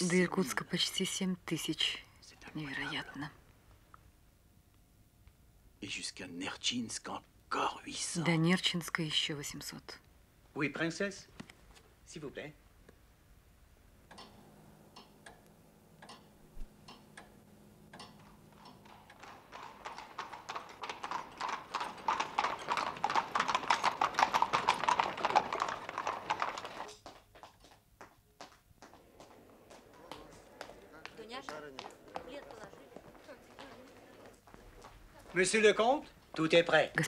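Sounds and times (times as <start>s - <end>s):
horse hooves clip-clopping: 18.0s - 37.0s.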